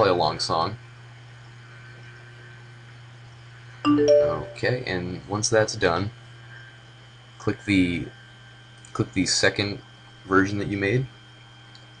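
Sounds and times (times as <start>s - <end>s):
rising three-note electronic chime: 3.9s - 4.8s.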